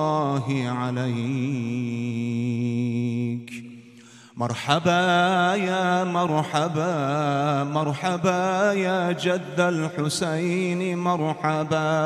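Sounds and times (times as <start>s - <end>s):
man singing into a microphone: 0.0s - 12.0s
short breath: 3.8s - 4.4s.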